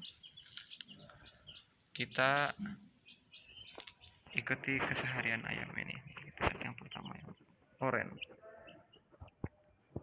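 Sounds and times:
chicks peeping: 0.0 - 10.0.

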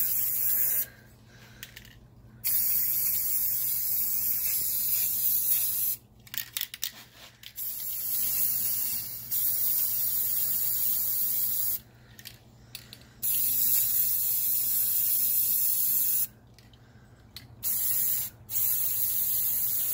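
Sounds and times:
spray paint can hissing: 0.0 - 0.9, 2.4 - 6.0, 7.6 - 11.8, 13.2 - 16.3, 17.6 - 19.9.

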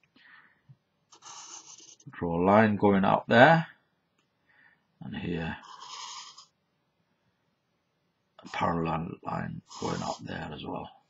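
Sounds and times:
felt-tip marker scratching card: 1.2 - 2.0, 9.8 - 10.2.

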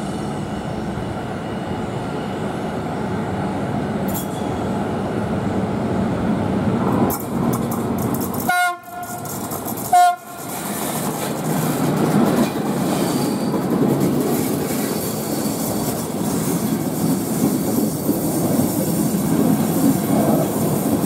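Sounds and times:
train wheels rumbling on rail: 0.0 - 21.0
locomotive horn blasts: 8.5 - 10.4.

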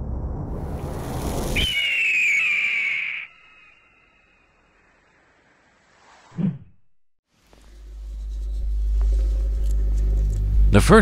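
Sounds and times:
rising whoosh: 0.0 - 4.3, 5.2 - 6.7
bird of prey screech: 1.5 - 5.0.

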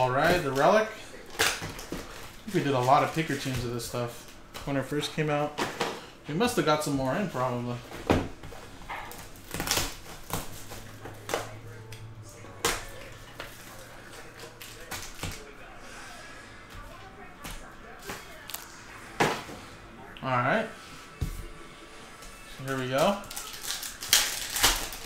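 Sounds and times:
plastic wrap crinkling: 0.0 - 4.5, 8.6 - 11.6, 22.6 - 25.0.

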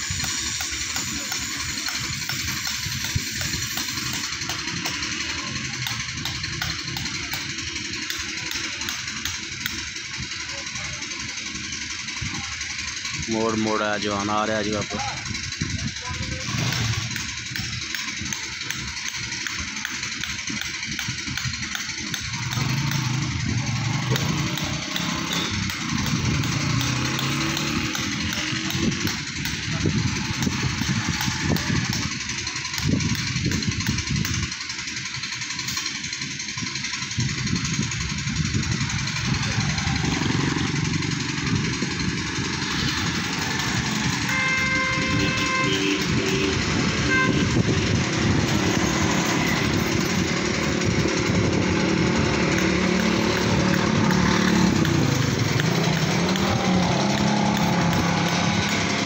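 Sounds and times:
motorcycle engine: 0.0 - 59.0
tractor engine: 0.0 - 59.0
vehicle horn: 44.2 - 47.9.

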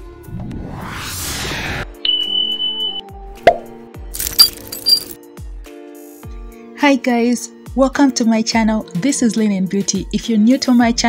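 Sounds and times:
sharp pop-click sound effects: 3.4 - 3.8.

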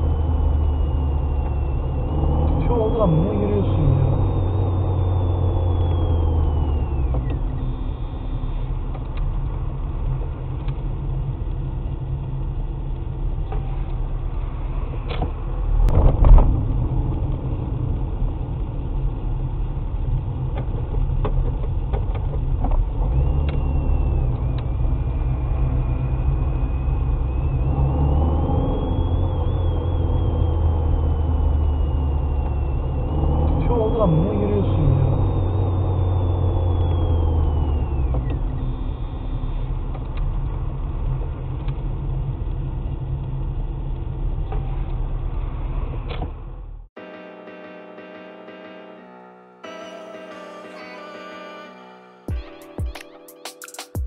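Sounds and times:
high whine: 0.0 - 21.0, 22.6 - 41.4, 47.0 - 54.0
car engine and road noise: 0.0 - 53.5.

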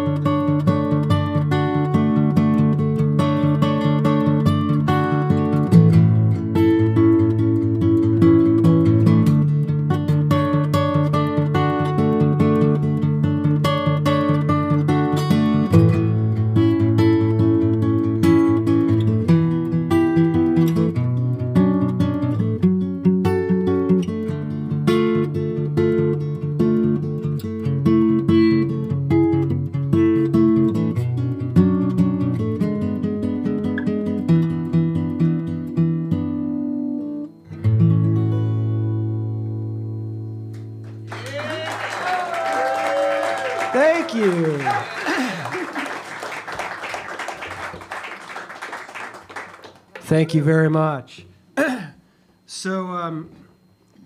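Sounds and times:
acoustic guitars playing: 0.0 - 52.5.

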